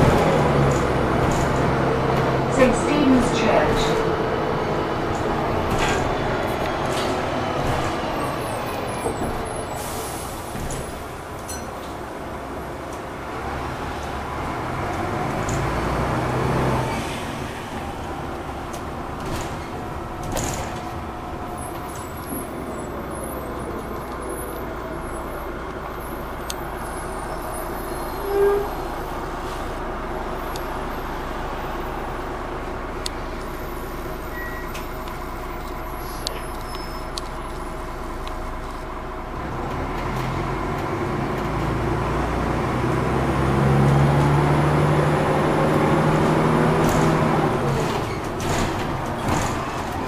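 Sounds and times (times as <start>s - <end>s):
bus engine and road rumble: 0.0s - 50.0s
short single tone: 34.3s - 34.8s.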